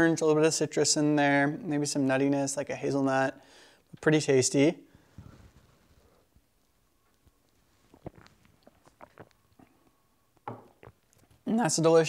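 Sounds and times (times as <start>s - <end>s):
lip and tongue smacks: 7.1s - 10.0s.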